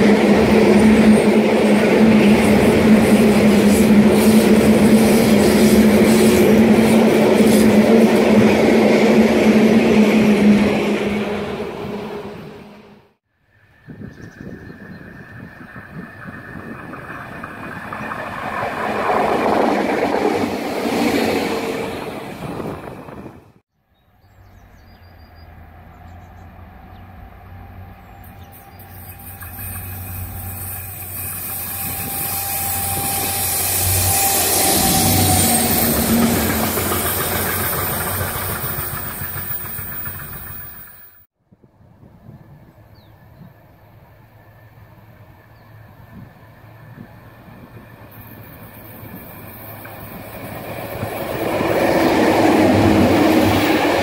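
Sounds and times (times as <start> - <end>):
rumbling train wheels: 0.0 - 12.8, 14.4 - 23.6, 26.5 - 41.3, 45.0 - 54.0
train passing: 0.0 - 13.8, 14.4 - 23.6, 24.6 - 41.3, 42.6 - 54.0
locomotive engine hum: 24.6 - 41.2.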